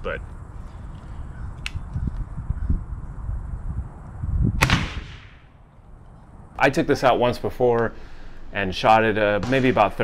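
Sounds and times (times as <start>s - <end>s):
rifle shot: 4.6s - 5.6s, 9.4s - 10.0s.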